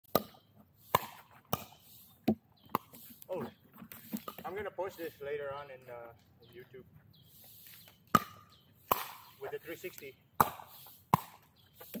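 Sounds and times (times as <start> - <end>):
paddle hitting plastic ball: 10.4 - 11.5.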